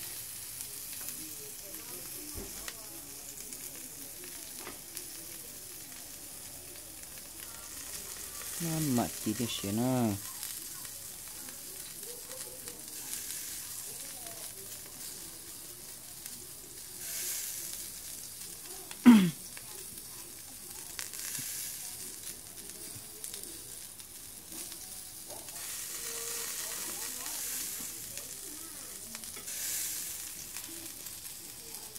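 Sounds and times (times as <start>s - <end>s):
meat sizzling on a grill: 0.0s - 31.9s.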